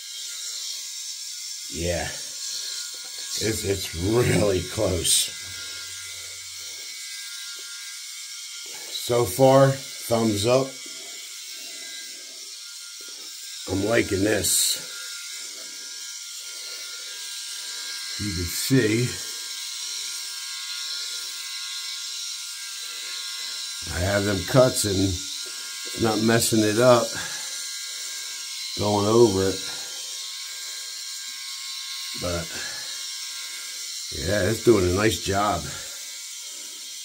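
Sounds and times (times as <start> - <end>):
electric shaver whirring: 0.0 - 37.0.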